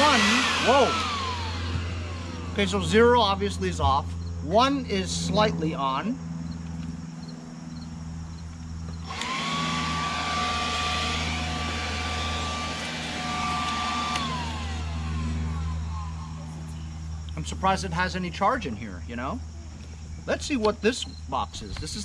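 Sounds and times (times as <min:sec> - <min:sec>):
leaf blower motor whine: 0:00.0 - 0:17.8.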